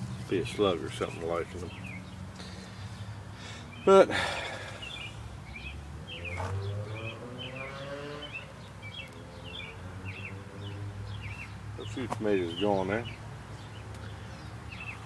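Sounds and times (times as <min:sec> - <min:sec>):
small birds chirping: 0:00.0 - 0:15.0.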